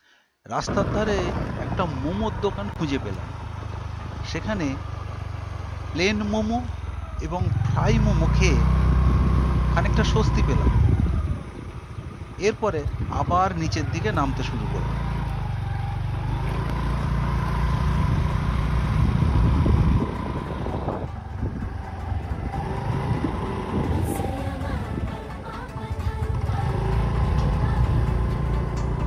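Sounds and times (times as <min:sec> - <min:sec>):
wind rumble on microphone: 0:00.6 - 0:04.8, 0:07.4 - 0:14.9, 0:17.7 - 0:28.3
motorbike engine: 0:00.6 - 0:29.0.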